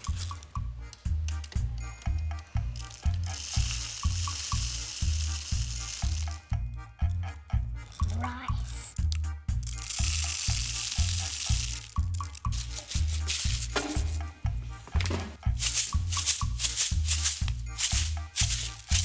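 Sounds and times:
background music with bass beat: 0.0s - 19.0s
rice pouring into plastic bottle: 2.8s - 6.5s, 9.6s - 14.2s, 15.6s - 19.0s.

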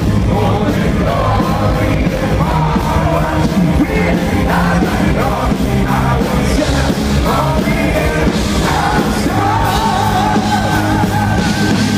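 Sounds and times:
metal band playing live: 0.0s - 11.9s.

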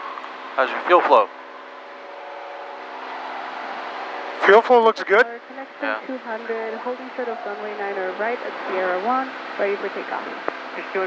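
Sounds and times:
aircraft engine and propeller drone: 0.0s - 11.0s.

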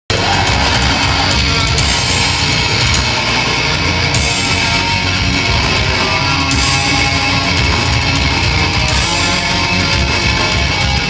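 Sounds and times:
metalcore band playing: 0.1s - 11.0s.

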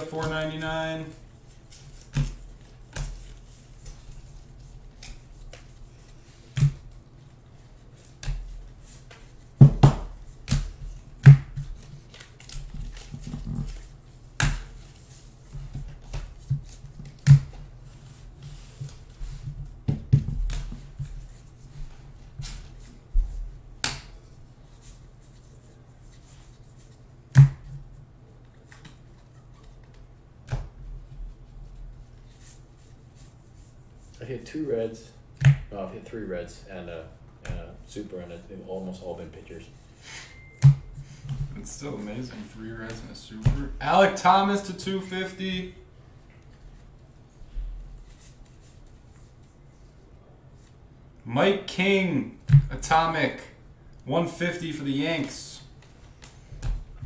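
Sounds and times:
cards snapping and slapping: 9.8s - 14.8s.

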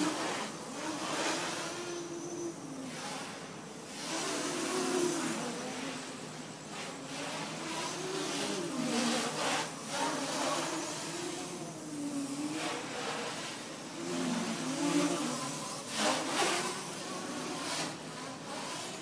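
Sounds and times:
drone propellers buzzing: 0.0s - 19.0s.

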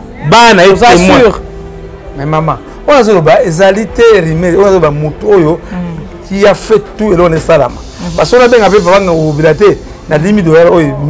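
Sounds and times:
man talking: 0.2s - 1.4s, 2.2s - 11.0s.

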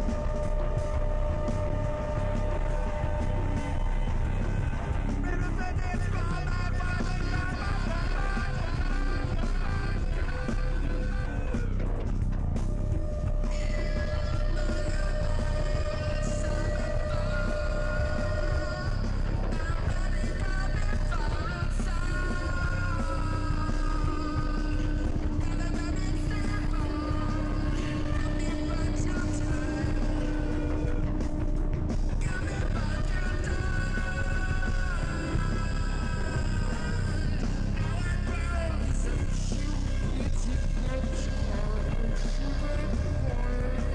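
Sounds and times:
bass guitar: 0.0s - 43.9s
drums: 0.0s - 43.9s
sliding effected cello notes: 0.0s - 43.9s.

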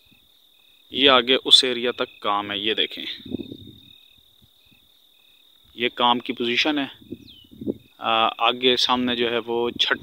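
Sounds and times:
faint insects chirping: 0.0s - 10.0s.

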